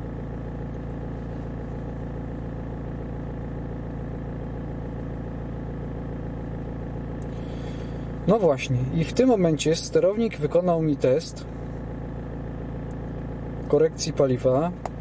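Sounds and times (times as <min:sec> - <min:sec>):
diesel engine idling: 0:00.0 - 0:15.0.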